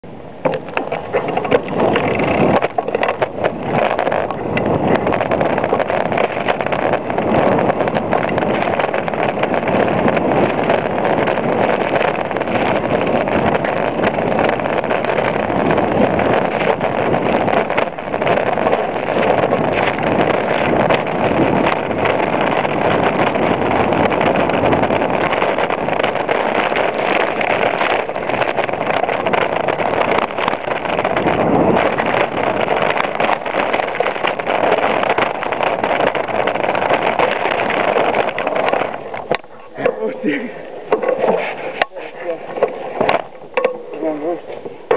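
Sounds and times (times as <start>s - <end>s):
tyre and wind rush: 0.0s - 44.9s
bike chain and suspension rattling: 0.4s - 44.9s.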